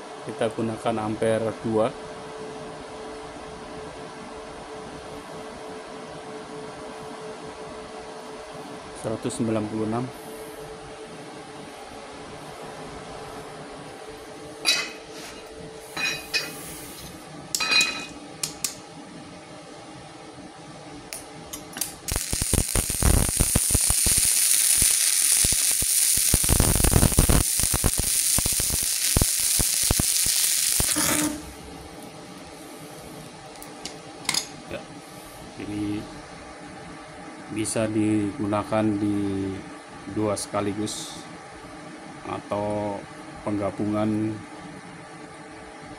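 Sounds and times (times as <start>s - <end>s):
welding arc crackling: 21.1s - 31.7s.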